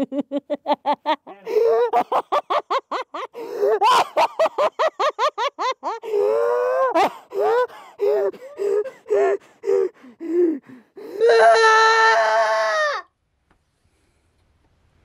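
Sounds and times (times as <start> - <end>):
man laughing hard: 0.0 - 10.0.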